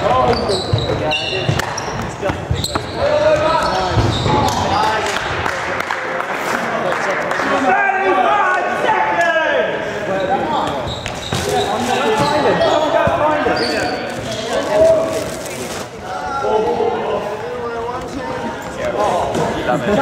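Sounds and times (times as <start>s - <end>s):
shoes squeaking on wooden floor: 0.0s - 4.6s, 10.2s - 16.0s
voices echoing in hall: 0.0s - 20.0s.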